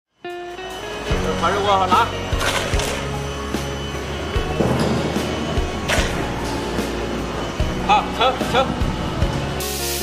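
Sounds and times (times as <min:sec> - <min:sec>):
background music sustained tones: 0:00.1 - 0:10.0.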